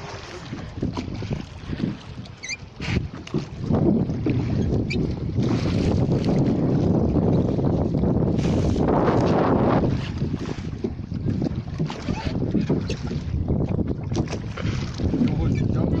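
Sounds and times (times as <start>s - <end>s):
water splashing around rowing boat: 0.0s - 16.0s
wind buffeting microphone: 0.0s - 16.0s.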